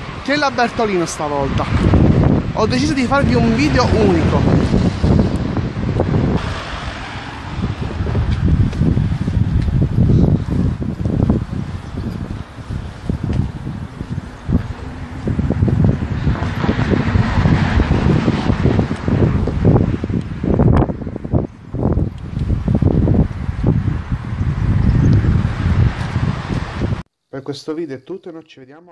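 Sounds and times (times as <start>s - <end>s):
wind buffeting microphone: 0.0s - 27.1s.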